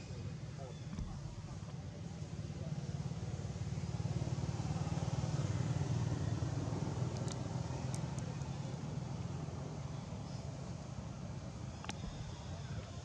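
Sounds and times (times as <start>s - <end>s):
faint clicks: 7.1s - 8.5s, 11.8s - 12.9s.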